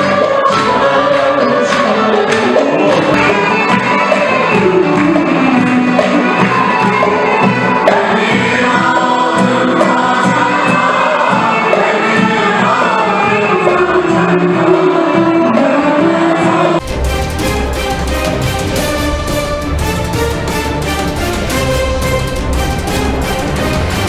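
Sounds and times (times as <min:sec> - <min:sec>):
mixed choir singing: 0:00.0 - 0:16.9
keyboard accompaniment: 0:00.0 - 0:24.0
theme music: 0:00.0 - 0:24.0.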